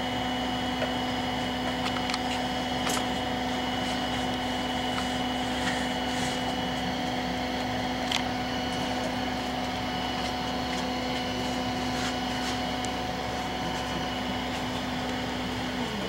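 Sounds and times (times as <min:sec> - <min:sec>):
steady mechanical hum: 0:00.0 - 0:16.0.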